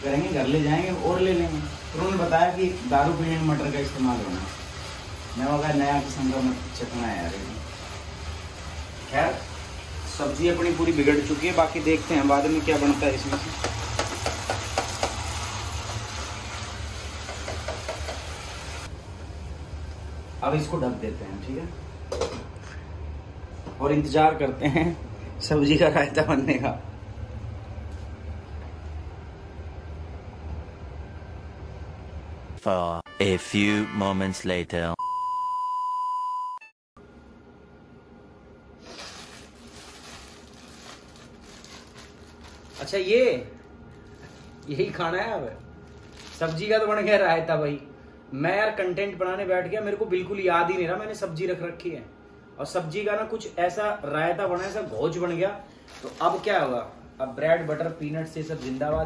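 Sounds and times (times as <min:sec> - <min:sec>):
vegetables hissing in a pot: 0:00.0 - 0:18.9, 0:38.8 - 0:42.0
plastic bag crinkling: 0:38.8 - 0:47.0, 0:55.7 - 0:59.0.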